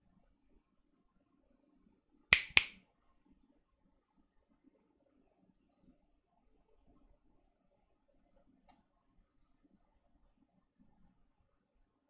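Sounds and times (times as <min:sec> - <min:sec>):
sharp clicks: 0:02.4 - 0:02.8.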